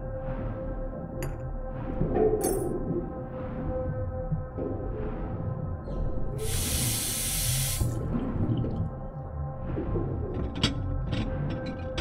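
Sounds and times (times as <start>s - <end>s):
low rumbling texture: 0.0s - 6.6s, 7.6s - 12.0s
water-like hiss: 6.4s - 8.0s.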